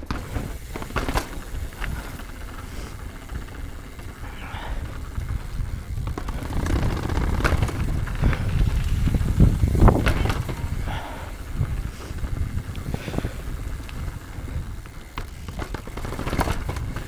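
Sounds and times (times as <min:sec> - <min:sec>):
bike tyres rumbling: 0:00.0 - 0:17.0
wheels knocking on steps: 0:00.0 - 0:17.0.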